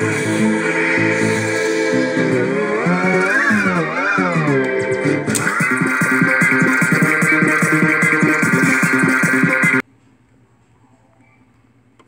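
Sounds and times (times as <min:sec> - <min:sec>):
music from a vinyl record: 0:00.0 - 0:09.8
pitched sound sliding up and down: 0:00.0 - 0:09.8.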